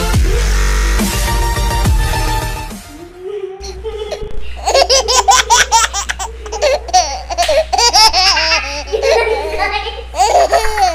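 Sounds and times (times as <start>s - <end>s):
girl giggling: 3.0s - 10.9s.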